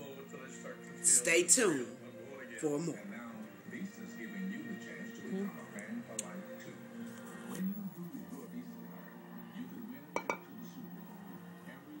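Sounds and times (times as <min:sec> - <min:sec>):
faint background voices: 0:02.1 - 0:12.0
hard object clinking: 0:10.2 - 0:10.5.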